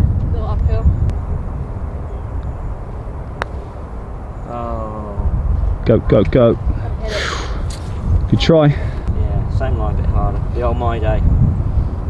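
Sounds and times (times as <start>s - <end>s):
steady low rumble: 0.0s - 12.0s
putter striking golf ball: 3.4s - 3.6s.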